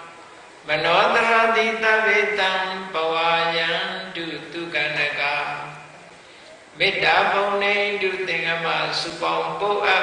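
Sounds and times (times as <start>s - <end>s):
monk chanting: 0.0s - 6.1s, 6.8s - 10.0s.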